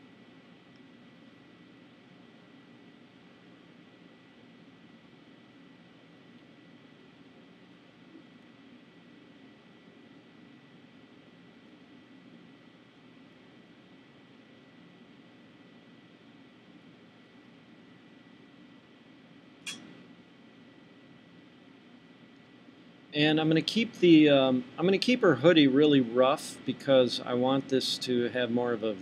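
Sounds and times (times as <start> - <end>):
sharp click: 19.6 - 20.0
thin high whine: 19.7 - 20.0
faint steady hiss: 22.2 - 29.0.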